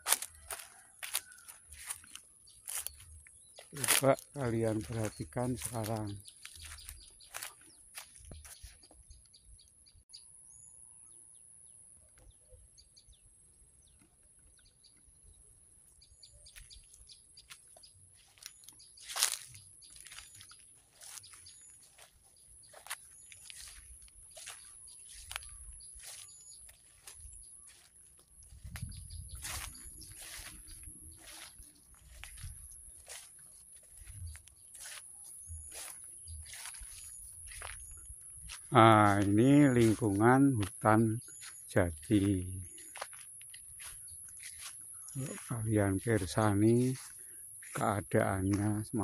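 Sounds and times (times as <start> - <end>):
footsteps through grass: 0.0 - 9.2, 16.0 - 49.0
birds chirping: 0.0 - 49.0.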